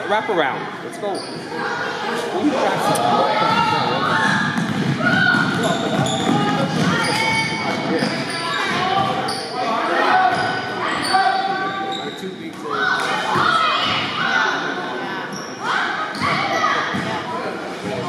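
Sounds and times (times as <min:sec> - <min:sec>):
people shouting in echoing hall: 0:01.6 - 0:11.9, 0:12.7 - 0:15.0
basketball dribbling on hardwood floor: 0:04.3 - 0:07.0.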